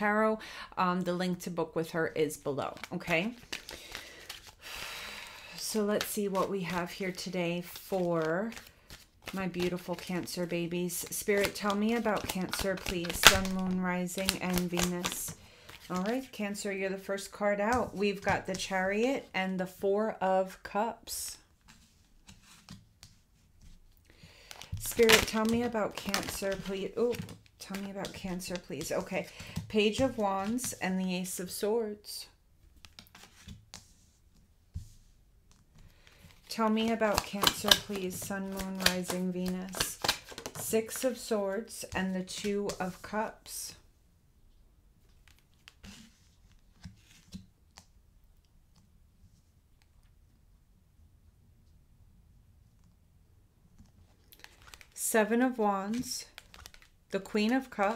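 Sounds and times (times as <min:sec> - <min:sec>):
shuffling cards: 0:02.7 - 0:04.6, 0:05.9 - 0:16.3, 0:21.6 - 0:30.8, 0:32.6 - 0:34.1, 0:34.8 - 0:41.3, 0:45.0 - 0:47.9, 0:54.0 - 0:55.0, 0:55.8 - 0:57.9
soft card clicks and slides: 0:21.6 - 0:23.8, 0:32.8 - 0:36.5, 0:45.2 - 0:47.9.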